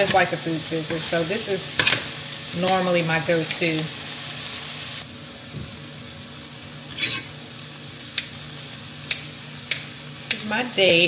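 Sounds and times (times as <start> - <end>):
food sizzling in skillet: 0.0 - 11.0.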